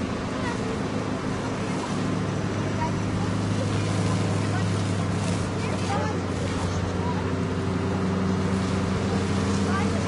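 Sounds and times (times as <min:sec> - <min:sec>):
fire hose spraying water: 0:00.0 - 0:10.0
pump motor droning: 0:00.0 - 0:10.0.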